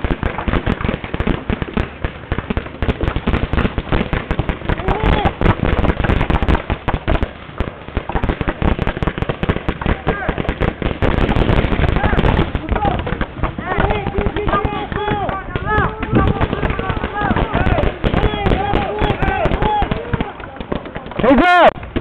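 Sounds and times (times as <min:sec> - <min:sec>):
paintball markers firing: 0:11.8 - 0:22.0.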